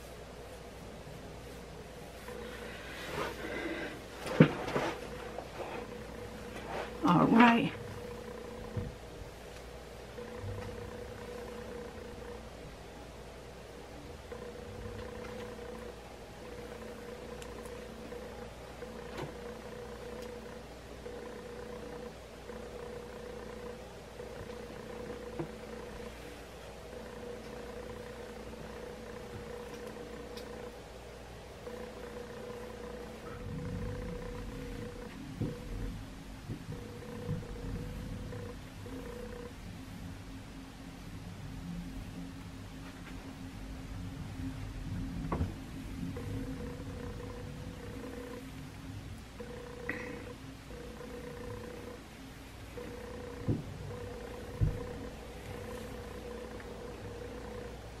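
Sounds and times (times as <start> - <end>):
faint steady hum: 0.0 - 58.0.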